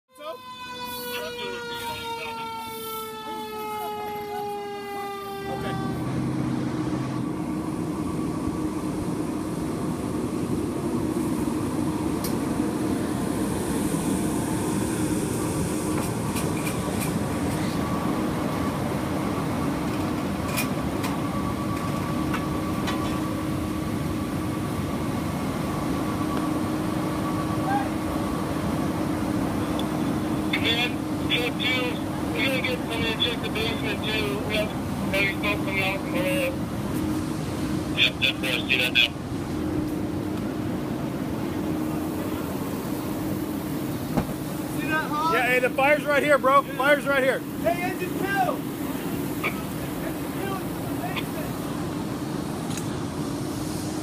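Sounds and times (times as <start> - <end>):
fire engine siren winding down: 0.1 - 52.5
fire engine engine humming: 0.1 - 54.0.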